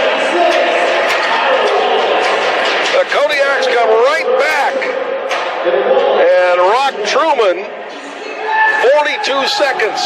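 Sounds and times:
indistinct voices in arena: 0:00.0 - 0:10.0.

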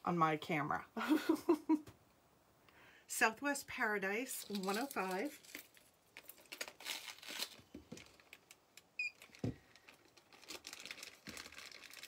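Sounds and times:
plastic packaging rustling: 0:04.3 - 0:12.0.

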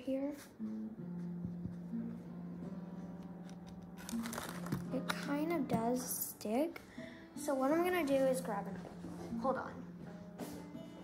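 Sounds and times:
paper towel crinkling: 0:03.8 - 0:05.1.

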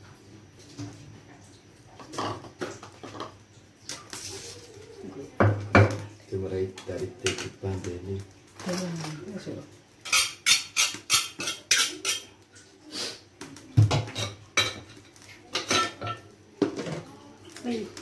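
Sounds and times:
metal pots clattering in sink: 0:02.0 - 0:03.4, 0:10.0 - 0:12.4, 0:13.8 - 0:17.0.

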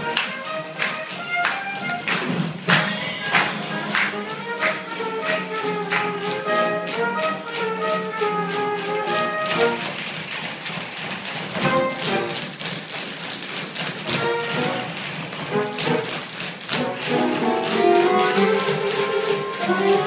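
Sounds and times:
pit orchestra playing show music: 0:00.0 - 0:20.0
tap shoes clattering on wood: 0:00.0 - 0:20.0.

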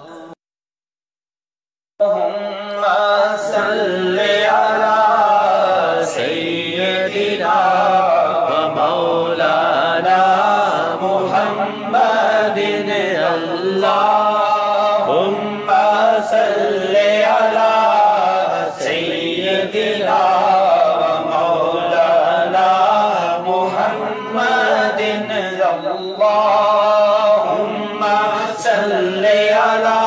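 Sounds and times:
man chanting unaccompanied: 0:00.0 - 0:00.4, 0:02.0 - 0:30.0.

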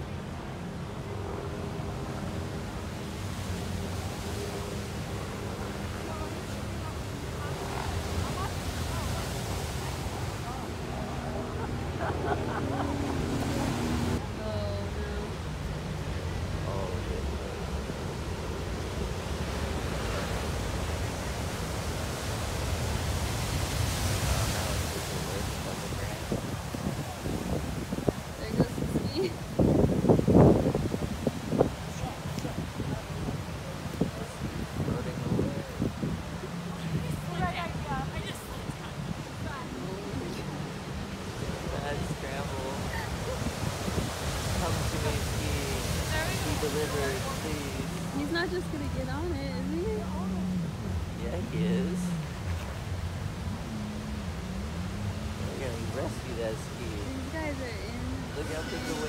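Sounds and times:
wind buffeting microphone: 0:00.0 - 0:59.0
surf breaking on boulder beach: 0:15.2 - 0:59.0.

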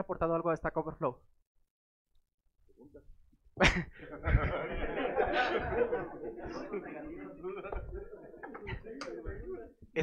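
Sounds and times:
room chatter: 0:04.0 - 0:10.0.

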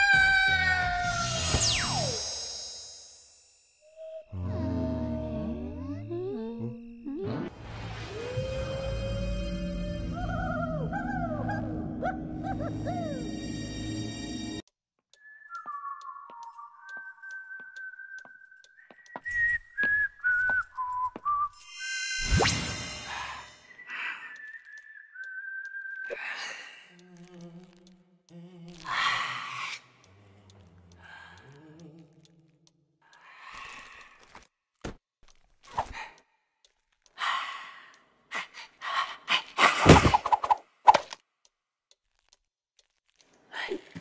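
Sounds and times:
person whistling a slow tune: 0:15.2 - 0:21.7, 0:23.7 - 0:26.2.

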